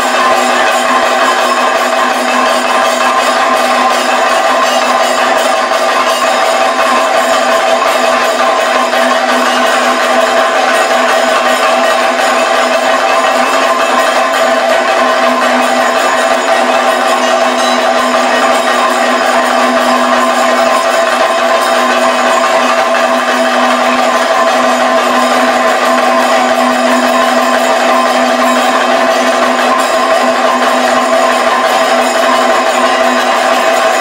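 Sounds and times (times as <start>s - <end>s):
drums played loudly: 0.0s - 34.0s
steady ringing tones: 0.0s - 34.0s.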